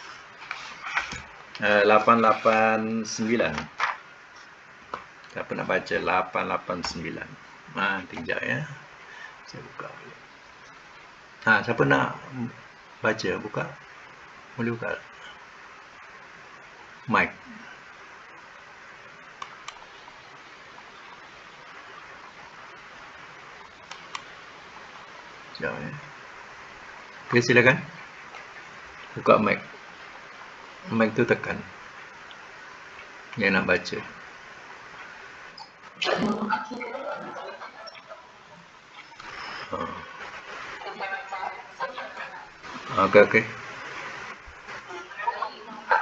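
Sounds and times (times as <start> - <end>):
microphone hiss: 0.0 - 46.0
computer mouse clicks: 23.8 - 24.3.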